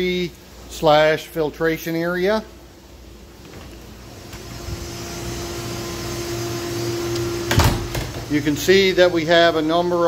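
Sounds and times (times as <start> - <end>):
machine hum and hiss: 0.0 - 10.0.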